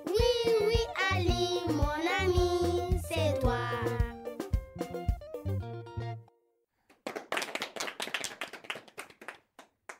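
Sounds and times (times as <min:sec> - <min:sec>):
keyboard notes over a beat: 0:02.4 - 0:06.3
people clapping: 0:06.9 - 0:09.9.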